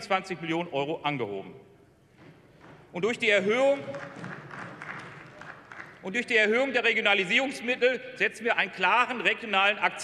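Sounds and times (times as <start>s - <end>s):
scattered applause: 3.8s - 6.0s.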